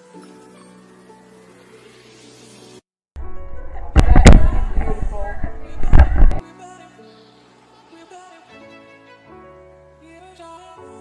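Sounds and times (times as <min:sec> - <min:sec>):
distorted voices: 0:03.6 - 0:06.4.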